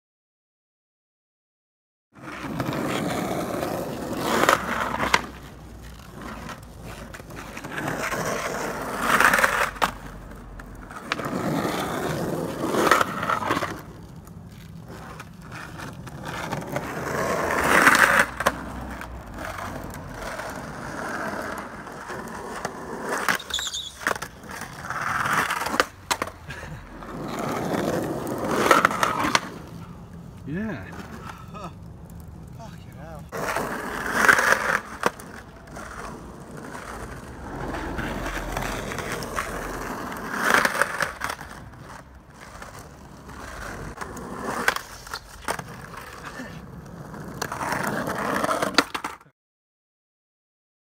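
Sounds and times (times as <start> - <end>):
skateboard wheels rolling on asphalt: 2.1 - 49.3
skateboard clacking on curb: 2.2 - 49.3.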